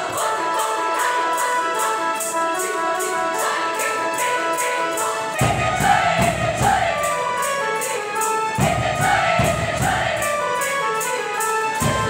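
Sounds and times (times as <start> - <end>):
choir singing: 0.0 - 12.0
fast high rattling beat: 2.6 - 10.8.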